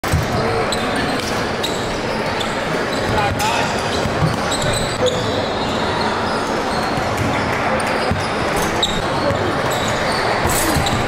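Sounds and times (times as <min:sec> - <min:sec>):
basketballs bouncing on wood: 0:03.1 - 0:04.7.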